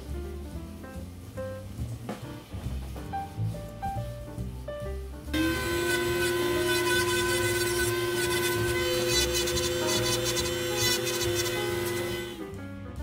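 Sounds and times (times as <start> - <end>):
jazz music: 0.0 - 13.0
electric nail drill whining: 5.4 - 12.4.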